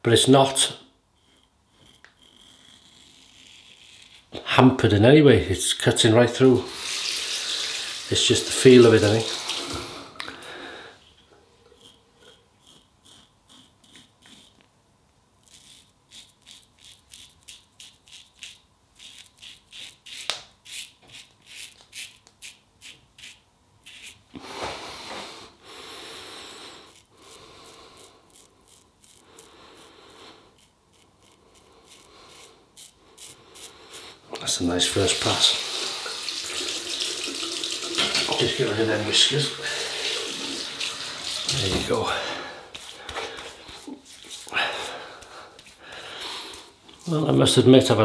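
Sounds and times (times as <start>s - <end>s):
razor scraping stubble: 1.2s - 5.0s, 11.6s - 14.7s, 15.4s - 24.7s, 26.5s - 36.0s, 38.0s - 48.0s.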